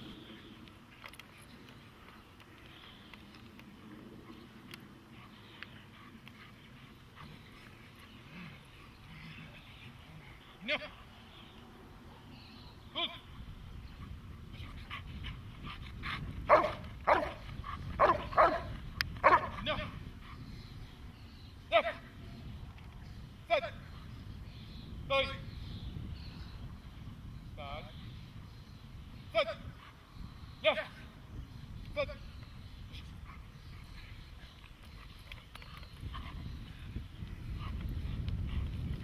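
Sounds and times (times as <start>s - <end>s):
wind rumble on microphone: 11.8s - 39.0s
dog barking: 16.5s - 17.4s, 18.0s - 19.6s
dog breathing hard: 33.2s - 39.0s.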